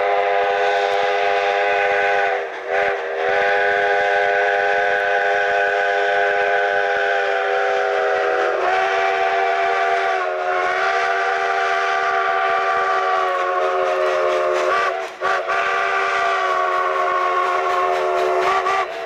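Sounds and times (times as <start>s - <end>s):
steam locomotive chime whistle: 0.0s - 19.0s.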